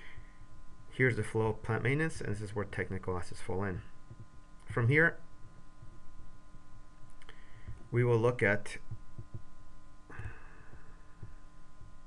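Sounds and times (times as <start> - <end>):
electrical hum: 0.0 - 12.0
soft low thumps: 0.0 - 12.0.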